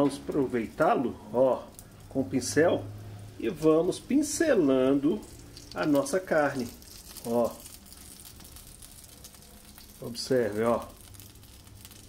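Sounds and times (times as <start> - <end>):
meat sizzling and crackling on grill: 0.0 - 12.0.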